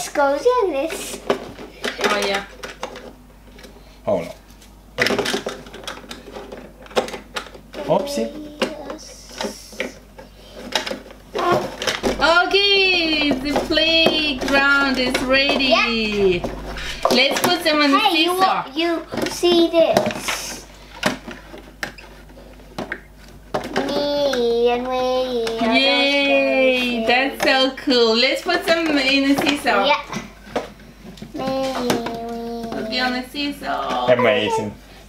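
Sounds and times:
plastic parts clicking and knocking: 5.0s - 8.0s, 8.6s - 12.2s
person speaking: 11.5s - 18.6s
soft knocking: 12.1s - 17.6s.

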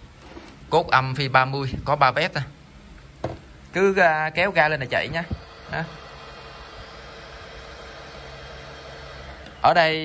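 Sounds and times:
electric motor whirring: 4.8s - 9.8s.

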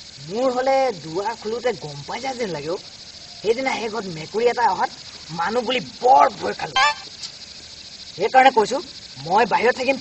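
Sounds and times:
night insects chirring: 0.0s - 10.0s
men talking: 0.3s - 7.2s.

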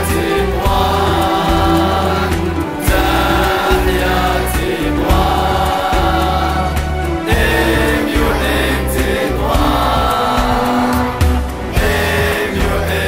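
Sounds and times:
group of voices singing an anthem: 0.0s - 13.0s
steady bass accompaniment: 0.0s - 13.0s.

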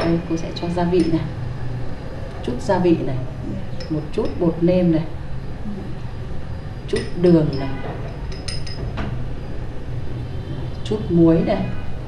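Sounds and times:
light clink: 6.9s - 8.9s.

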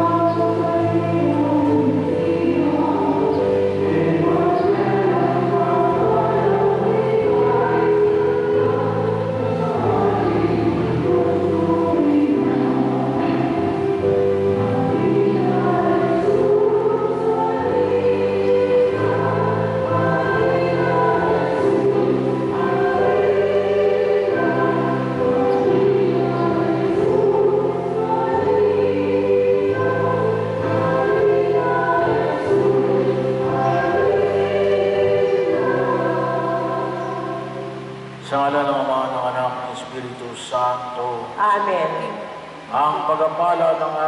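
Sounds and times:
church choir singing a hymn: 0.0s - 44.0s.

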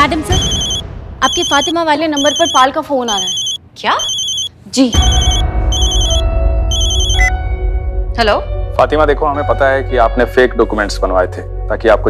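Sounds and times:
phone ringtone warbling beeps: 0.3s - 7.3s
background score bass tones: 5.0s - 10.0s.

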